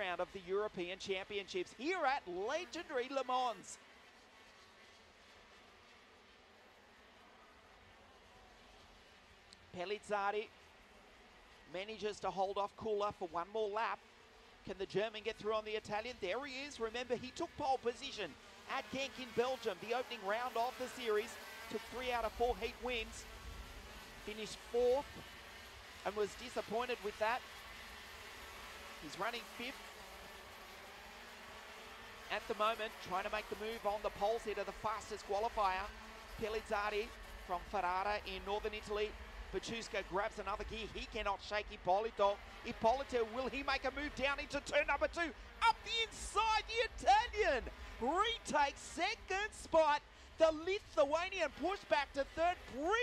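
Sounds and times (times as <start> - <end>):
distant kart engines buzzing: 0.0 - 53.0.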